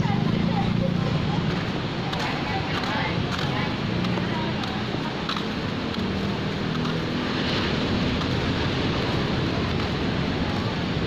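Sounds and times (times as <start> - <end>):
surf rushing: 0.0 - 11.0
wind: 0.0 - 11.0.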